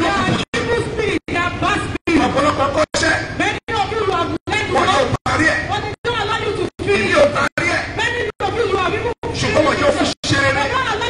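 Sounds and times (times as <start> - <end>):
man talking through loudspeaker: 0.0 - 11.0.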